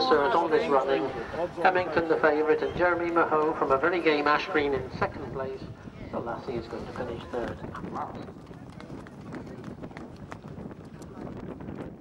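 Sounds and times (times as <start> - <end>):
horses galloping on turf: 6.5 - 12.0.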